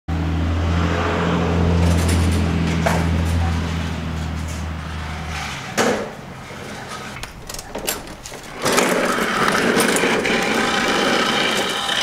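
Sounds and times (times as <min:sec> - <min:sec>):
diesel bus engine droning: 0:00.1 - 0:05.4.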